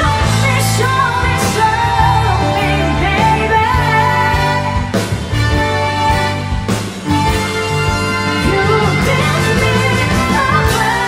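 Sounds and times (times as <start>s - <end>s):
bass: 0.0s - 11.0s
drums: 0.0s - 11.0s
saxophone: 0.0s - 11.0s
trumpet: 0.0s - 11.0s
trombone: 3.8s - 11.0s.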